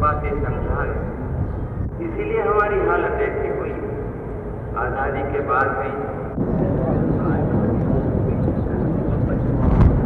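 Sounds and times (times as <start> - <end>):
low outdoor rumble: 0.0 - 10.0
faint voices: 4.6 - 9.7.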